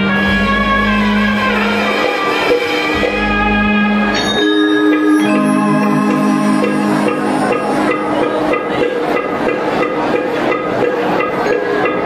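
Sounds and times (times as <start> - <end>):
sustained melodic accompaniment: 2.3 - 10.5.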